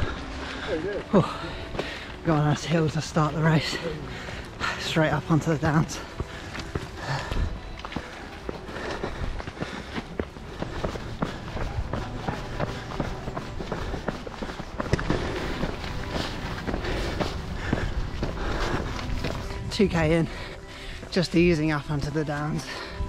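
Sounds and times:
running footsteps: 0.0s - 23.0s
steady low rumble: 1.5s - 21.0s.

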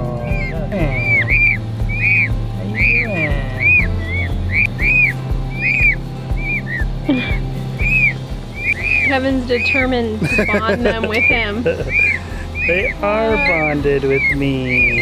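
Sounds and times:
chicks peeping: 0.0s - 15.0s
music with low beat: 0.0s - 15.0s.

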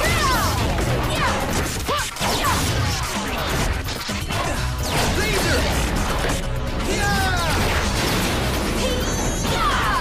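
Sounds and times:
action music: 0.0s - 10.0s.

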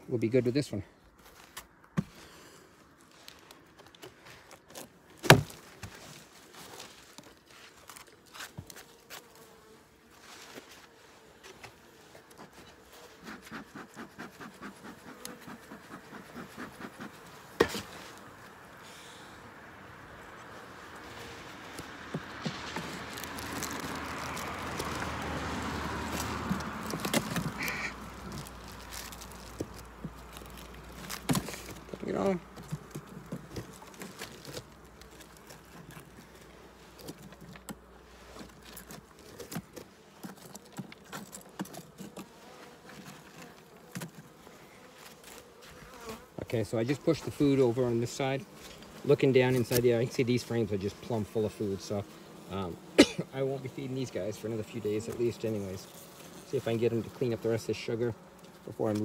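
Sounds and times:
scratchy rustle of dry sugar: 6.0s - 18.2s, 22.5s - 32.4s, 38.0s - 41.4s
honeybees buzzing: 7.2s - 59.0s.

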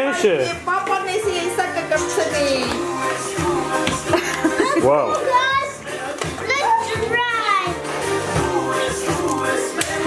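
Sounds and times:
background music: 0.0s - 10.0s
young children's voices: 4.6s - 7.8s.

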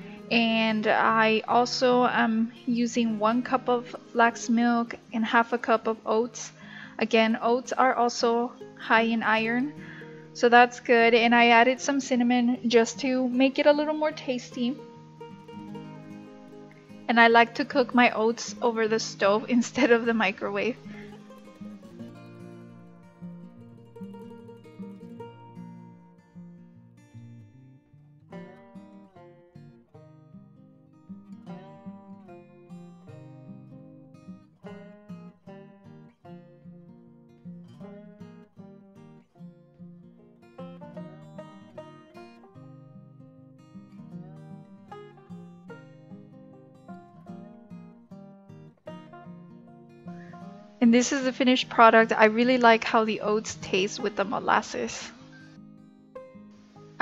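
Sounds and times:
acoustic guitar tune: 0.0s - 57.0s.

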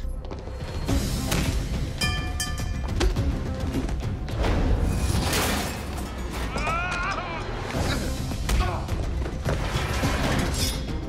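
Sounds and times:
dramatic orchestral score: 3.0s - 11.0s
person crying out: 6.5s - 7.6s.

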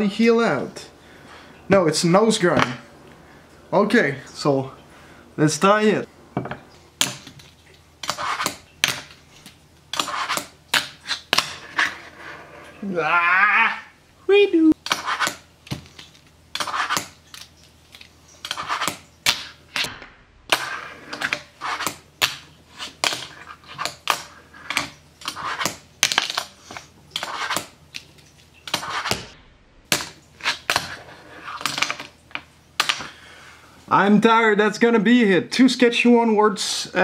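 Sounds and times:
fingerboard scraping: 10.0s - 12.8s, 18.5s - 19.0s, 20.6s - 22.0s, 22.7s - 25.8s, 28.7s - 29.2s.

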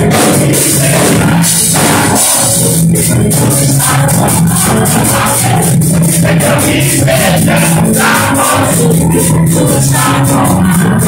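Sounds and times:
drum kit beat: 0.0s - 11.0s
live worship band music: 0.0s - 11.0s.

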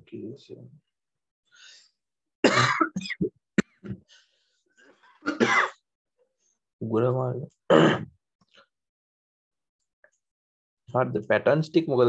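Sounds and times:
man coughing: 2.4s - 4.0s, 5.2s - 5.8s, 7.7s - 8.1s
man clearing his throat: 5.2s - 5.8s, 7.7s - 8.2s.

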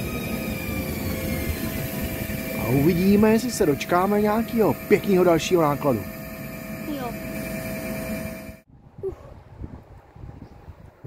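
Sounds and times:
train wheels rumbling on rail: 0.0s - 8.6s
thin steady whine: 0.0s - 8.7s.

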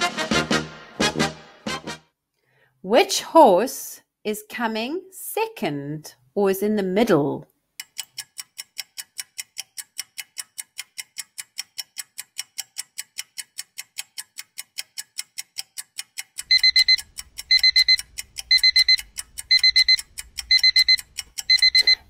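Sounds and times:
clock ticking: 7.8s - 22.0s
digital alarm clock beeping: 16.4s - 22.0s.

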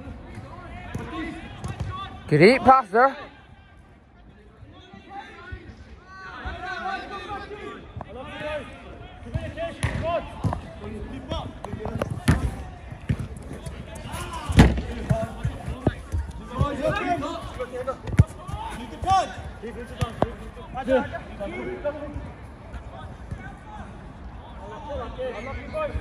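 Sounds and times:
football being kicked: 9.3s - 10.6s, 11.7s - 13.4s, 14.4s - 17.3s, 18.0s - 18.8s.

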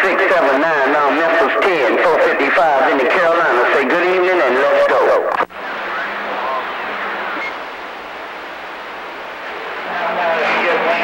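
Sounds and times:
voice over radio: 0.0s - 7.5s
radio static hiss: 0.0s - 11.0s.

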